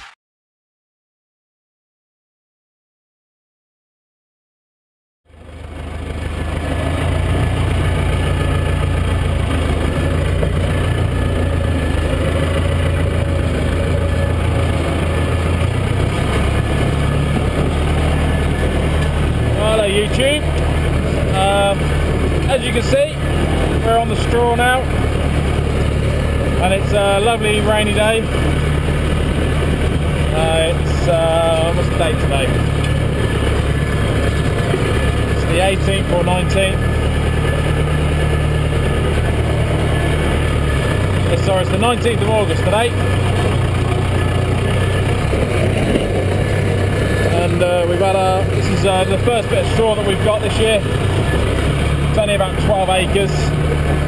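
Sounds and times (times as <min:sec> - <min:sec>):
tractor diesel engine running: 0:05.3 - 0:54.0.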